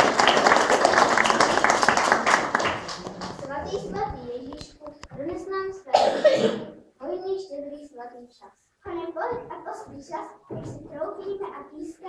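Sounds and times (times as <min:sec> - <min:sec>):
children talking: 0:03.1 - 0:12.0
loud cough: 0:05.9 - 0:06.8.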